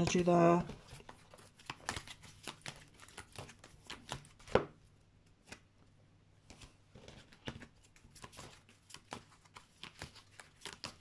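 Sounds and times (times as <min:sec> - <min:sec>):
cards being shuffled: 0:00.0 - 0:05.7, 0:06.4 - 0:11.0.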